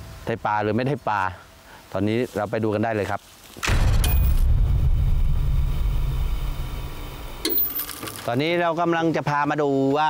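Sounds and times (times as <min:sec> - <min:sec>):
deep rumbling drone: 0:03.6 - 0:07.9
sharp hit: 0:03.6 - 0:08.3.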